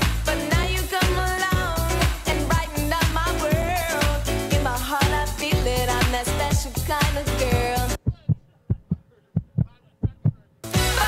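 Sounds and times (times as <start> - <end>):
heartbeat thumps: 7.6 - 10.5.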